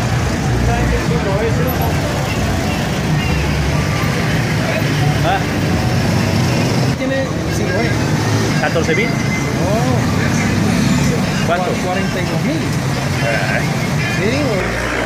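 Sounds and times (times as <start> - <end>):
motorcycles and cars passing: 0.0 - 15.0
people's voices: 0.0 - 15.0.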